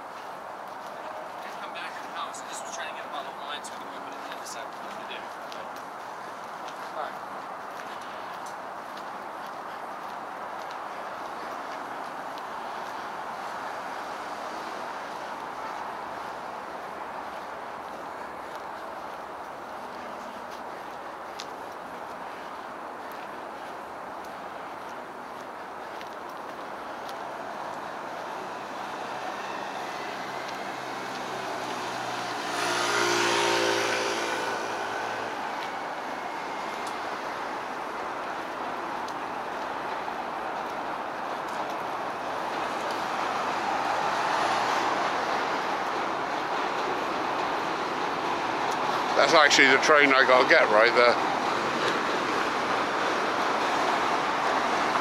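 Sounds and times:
passing cars: 0.0s - 55.0s
vehicle passing close: 26.5s - 55.0s.

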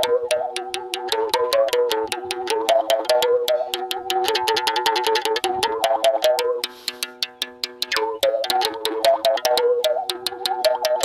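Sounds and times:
mouth bow string taps: 0.0s - 11.0s.

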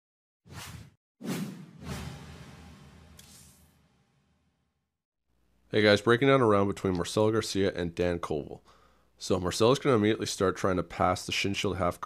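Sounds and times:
whoosh sound effects: 0.5s - 3.9s.

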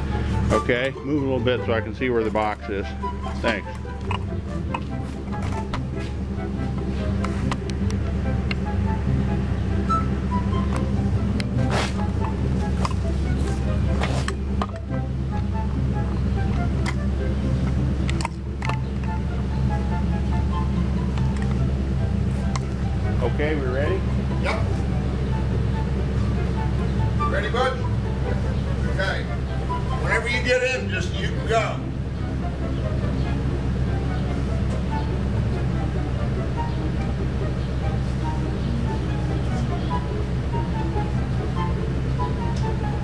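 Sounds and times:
truck engine idling: 0.0s - 43.0s
sharp knocks and clanks: 10.7s - 19.2s.

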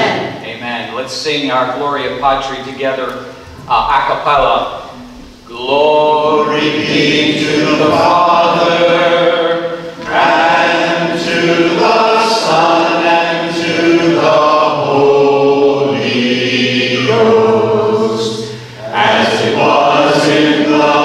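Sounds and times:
congregation singing a hymn: 2.7s - 21.0s.

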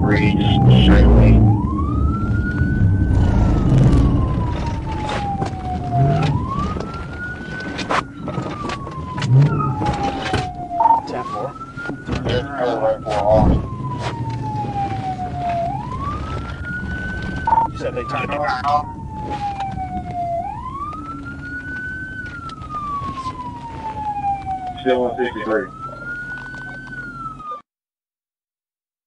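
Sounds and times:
police siren wailing: 0.0s - 27.6s.

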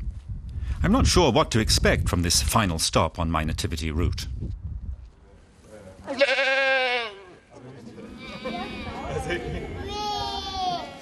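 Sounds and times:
goat bleating: 6.1s - 7.3s, 8.1s - 9.3s.

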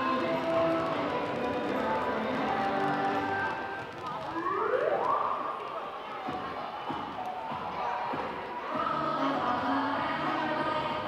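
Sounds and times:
murmur of voices: 5.4s - 11.0s.

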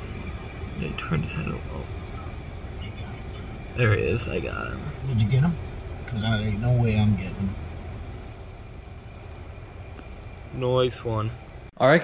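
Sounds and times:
vehicle engine rumble: 0.0s - 12.0s.

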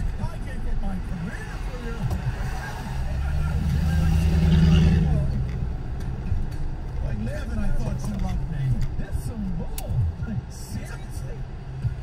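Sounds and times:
car engine hum from inside cabin: 0.0s - 12.0s.

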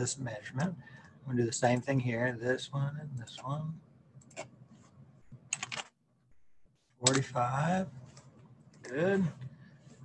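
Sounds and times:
typing on computer keyboard: 5.5s - 6.0s.

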